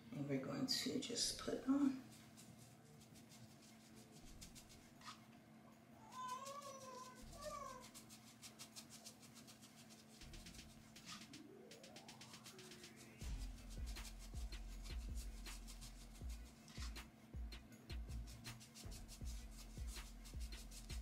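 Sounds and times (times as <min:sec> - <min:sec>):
brush dabbing hair: 0:00.8 - 0:05.2, 0:06.0 - 0:21.0
rising whistle-like sweep: 0:11.2 - 0:13.4.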